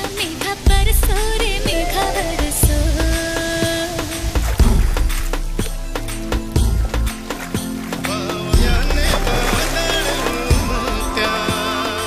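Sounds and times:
film song with drum beats: 0:00.0 - 0:12.0.

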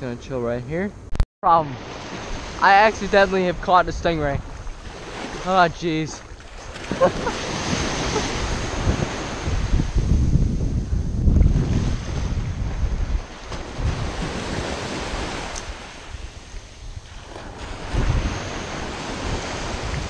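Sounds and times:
shallow surf washing: 0:01.5 - 0:20.0
wind buffeting microphone: 0:01.8 - 0:20.0.

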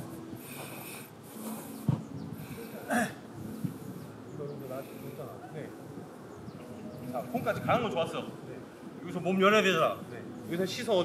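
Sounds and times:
faint distant voices: 0:00.0 - 0:11.0
outdoor background noise: 0:00.0 - 0:11.0.

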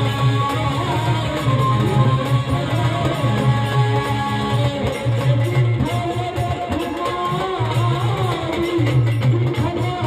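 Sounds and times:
accompanying instruments: 0:00.0 - 0:10.0
man singing into a microphone: 0:00.0 - 0:10.0.

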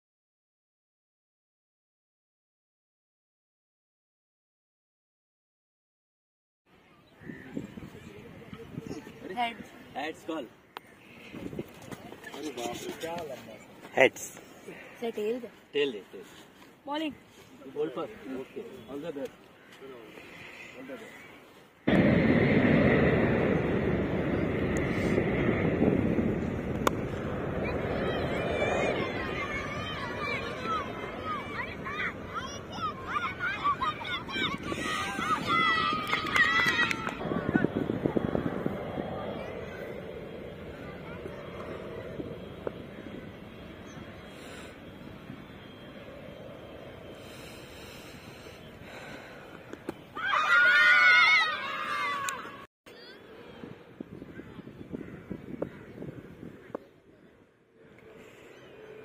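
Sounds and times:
wind rushing over microphone: 0:07.1 - 0:10.3, 0:11.1 - 0:13.0, 0:21.9 - 0:49.2, 0:53.2 - 0:57.4
faint distant voices: 0:27.1 - 0:49.7.

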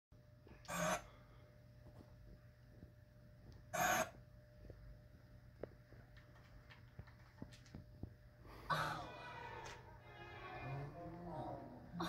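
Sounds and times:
steady low hum: 0:00.2 - 0:12.0.

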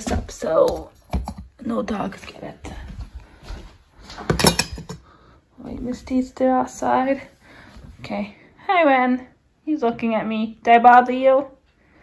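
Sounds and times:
metallic clatter of bowls: 0:04.2 - 0:05.0.

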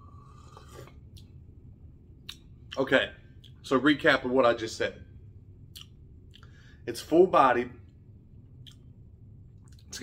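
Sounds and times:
person slurping coffee: 0:00.0 - 0:01.0.

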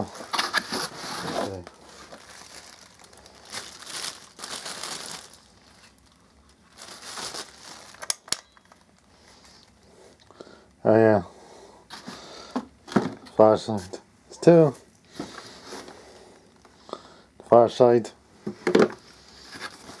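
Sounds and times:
plastic bag crinkling: 0:00.0 - 0:09.8.

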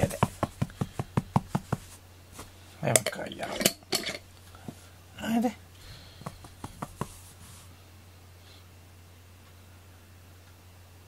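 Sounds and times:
fingers tapping on carpet: 0:00.0 - 0:02.5, 0:06.0 - 0:07.6
scratchy scrapes on carpet: 0:06.3 - 0:07.7.

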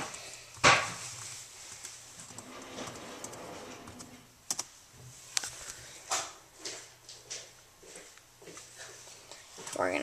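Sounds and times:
typing on computer keyboard: 0:01.8 - 0:04.7.

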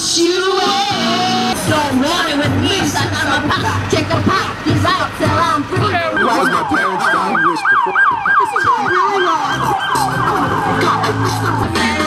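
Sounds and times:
police siren yelping: 0:01.0 - 0:12.0.

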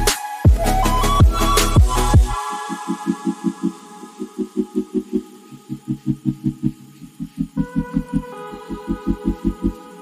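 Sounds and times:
pulsing bass: 0:00.0 - 0:02.4.

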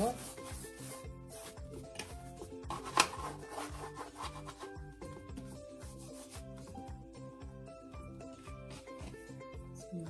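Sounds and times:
hands rubbing dough: 0:00.0 - 0:01.7, 0:02.8 - 0:06.6
music with repeating beat: 0:00.0 - 0:10.0.

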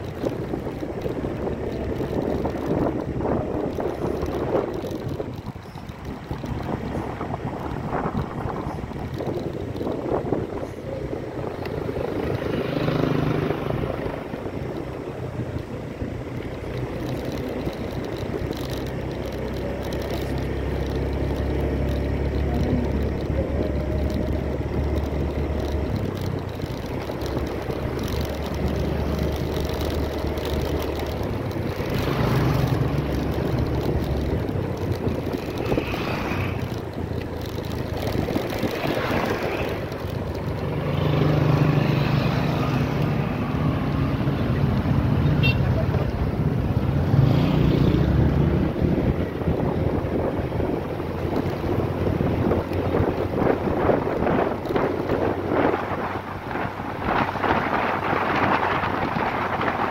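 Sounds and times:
wind on microphone: 0:00.0 - 0:45.2, 0:45.8 - 0:59.9
road noise: 0:00.0 - 0:59.9
vehicle engine drone: 0:00.0 - 0:59.9.

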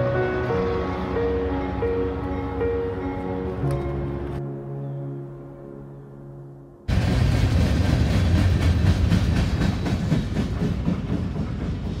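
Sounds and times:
train wheels rumbling on rails: 0:06.9 - 0:12.0
wheels clacking over rail joints: 0:06.9 - 0:12.0.

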